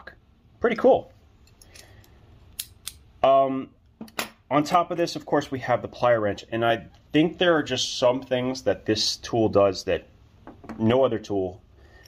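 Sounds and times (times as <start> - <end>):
pliers metal clicks: 1.5 - 3.0.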